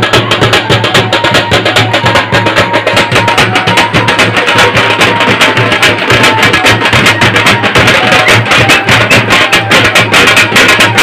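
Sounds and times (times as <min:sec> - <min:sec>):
loud music with fast percussion beat: 0:00.0 - 0:11.0.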